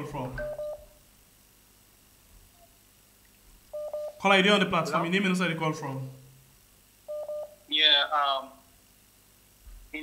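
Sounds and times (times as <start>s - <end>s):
telephone call tone beep: 0.4s - 1.0s, 3.7s - 4.2s, 7.1s - 7.6s.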